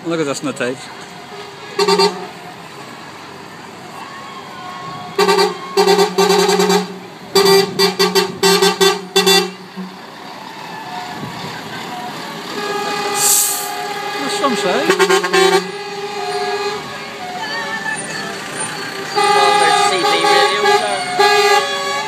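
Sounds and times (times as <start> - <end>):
truck engines running: 0.0 - 22.0
lorry air horns tooting: 1.2 - 2.5, 4.8 - 10.1, 10.7 - 22.0
short hiss: 13.2 - 13.8.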